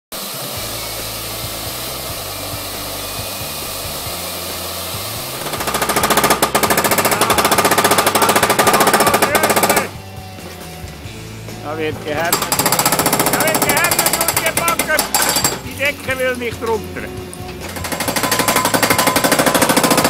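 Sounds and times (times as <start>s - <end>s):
firework fountain hissing and crackling: 0.2s - 5.4s
fast hammering rattle: 1.4s - 10.0s, 12.1s - 16.1s, 17.6s - 20.0s.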